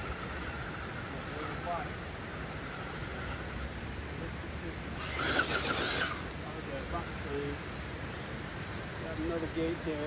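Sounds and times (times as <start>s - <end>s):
electric motor whining: 5.0s - 6.3s
tires scrabbling on rock: 5.0s - 6.4s.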